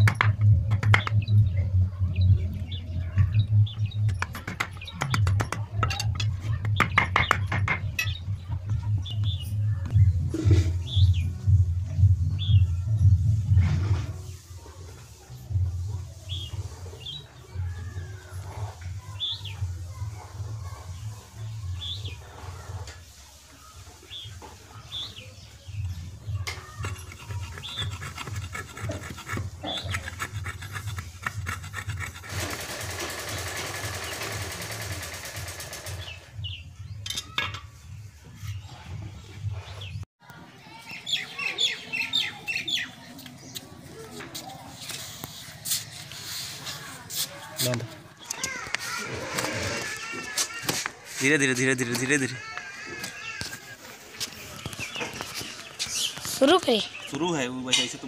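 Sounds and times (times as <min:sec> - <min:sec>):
blade scraping wood: 0:26.5 - 0:33.2, 0:44.8 - 0:52.2.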